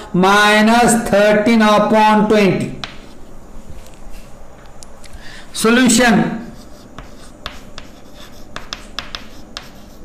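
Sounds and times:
chalk tapping and scratching on blackboard: 0:02.8 - 0:03.2, 0:06.4 - 0:10.0.

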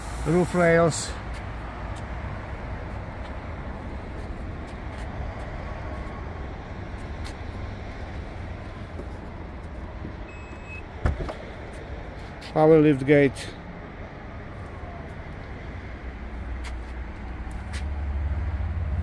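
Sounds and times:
low outdoor rumble: 0:00.9 - 0:19.0.

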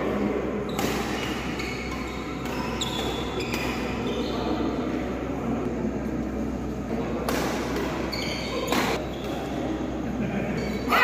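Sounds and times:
steady background noise: 0:00.0 - 0:11.0
racket hitting shuttlecock: 0:00.7 - 0:04.1, 0:07.2 - 0:09.6
shoe squeaks on court: 0:00.7 - 0:04.6, 0:08.0 - 0:09.5.

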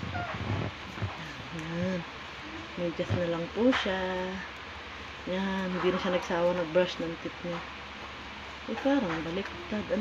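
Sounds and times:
clothing and blanket rustling: 0:00.0 - 0:02.0.

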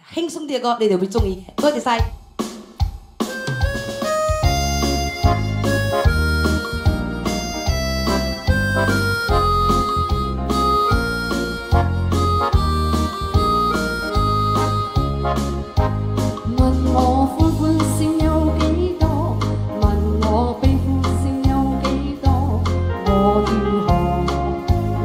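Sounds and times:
steady bass and beat: 0:01.2 - 0:16.8
electronic keyboard pop melody: 0:03.2 - 0:25.0.

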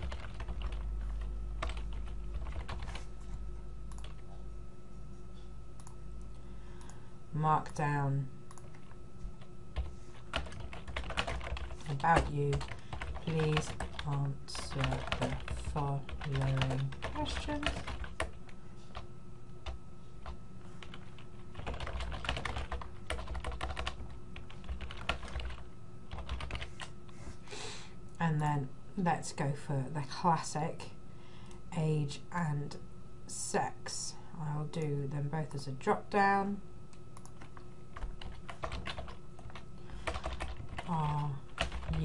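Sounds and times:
typing on computer keyboard: 0:00.0 - 0:03.0, 0:09.8 - 0:18.4, 0:20.2 - 0:26.9, 0:37.2 - 0:42.0
steady low hum: 0:00.0 - 0:42.0.

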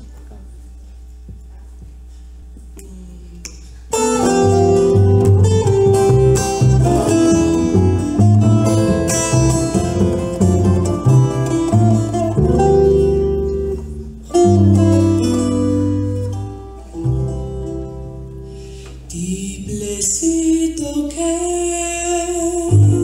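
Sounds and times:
plucked double bass: 0:03.9 - 0:20.2, 0:21.7 - 0:23.0
tiple strummed and picked: 0:03.9 - 0:20.2.

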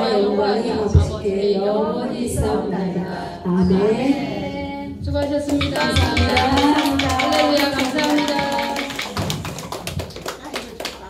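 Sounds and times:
voices singing: 0:00.0 - 0:09.2
hand clapping: 0:05.2 - 0:11.0
drum strokes: 0:05.5 - 0:09.6.

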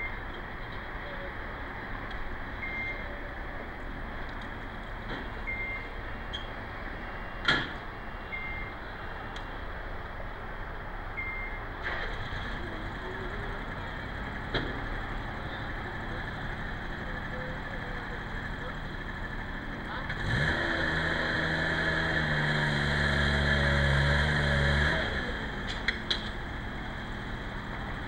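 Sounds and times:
engine humming: 0:00.0 - 0:28.0.

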